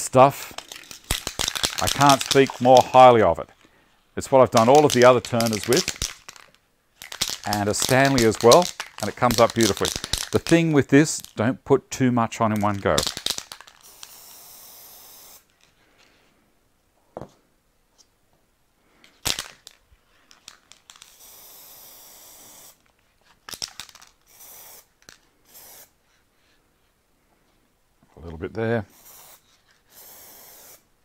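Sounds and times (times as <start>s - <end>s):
aerosol spray paint hissing: 0.6s - 3.1s, 13.3s - 15.5s, 21.0s - 22.8s, 24.3s - 24.9s, 25.5s - 26.0s, 28.9s - 30.9s.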